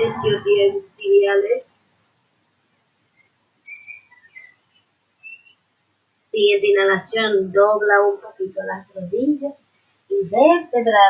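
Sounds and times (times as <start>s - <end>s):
bird chirping faintly: 3.0s - 5.8s.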